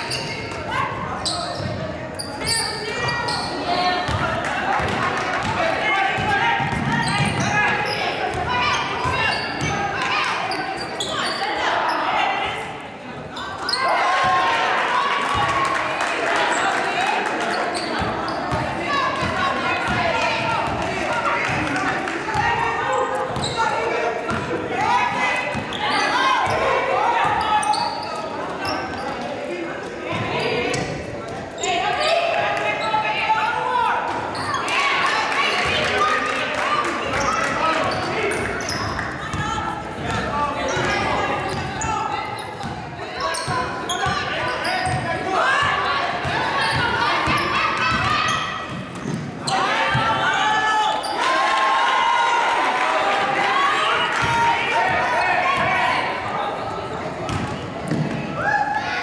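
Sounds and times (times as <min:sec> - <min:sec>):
people shouting and talking: 0:00.0 - 0:59.0.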